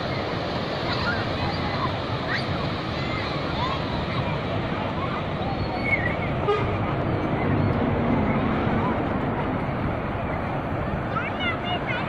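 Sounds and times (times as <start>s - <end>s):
distant shouts and chatter: 0.0s - 12.0s
ocean surf breaking: 0.0s - 12.0s.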